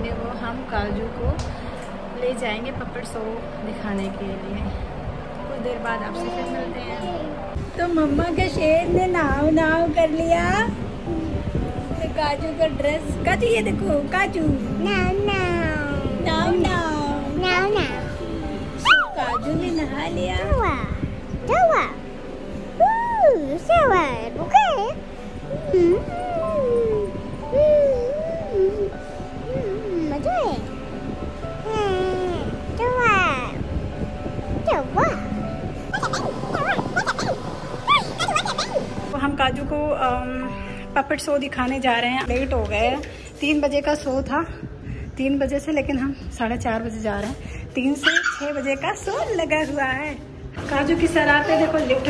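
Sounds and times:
background music: 0.0 - 52.0
toddler vocalising: 18.8 - 19.6, 22.8 - 30.7, 35.9 - 39.0, 48.0 - 48.6.

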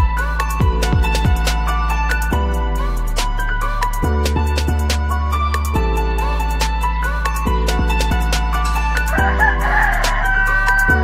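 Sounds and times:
background music: 0.0 - 11.0
rooster crowing: 9.0 - 11.0.

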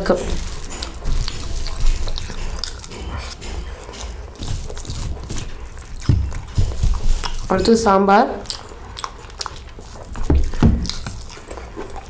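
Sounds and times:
person chewing food: 0.0 - 12.0
soft thumps: 4.4 - 7.4.

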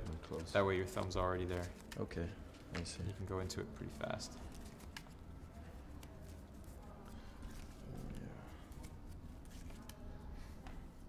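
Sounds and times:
playing cards clicking: 0.0 - 3.1, 4.4 - 10.0
low room hum: 0.0 - 11.0.

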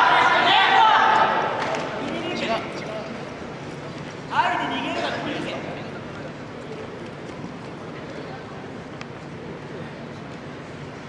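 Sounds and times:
scattered voices: 0.0 - 8.8.

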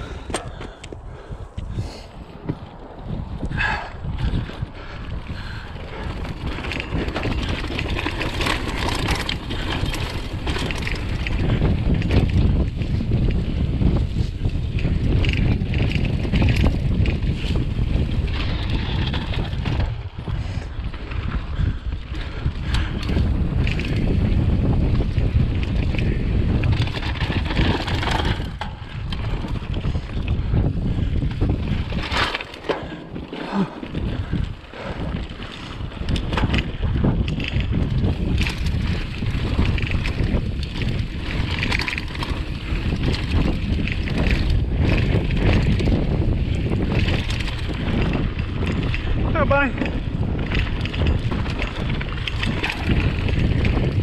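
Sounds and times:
bike clicks: 0.0 - 54.0
bike rattling: 0.0 - 54.0
bike tyre rumble: 0.0 - 54.0
wind buffeting microphone: 0.0 - 54.0.

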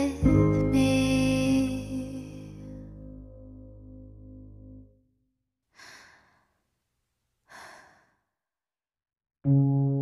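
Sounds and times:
person sighing: 5.8 - 6.5, 7.5 - 8.2.

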